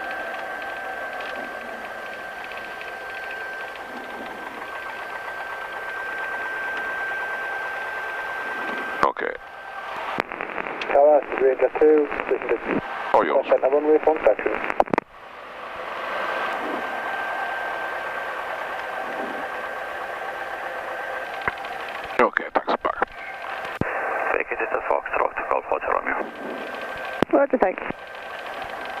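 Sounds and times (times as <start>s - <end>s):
thin constant whine: 0.0s - 29.0s
radio channel hiss: 8.3s - 15.0s, 16.3s - 17.4s, 19.0s - 19.6s, 21.7s - 29.0s
clipped radio voice: 9.0s - 9.4s, 10.8s - 14.8s, 22.2s - 26.4s.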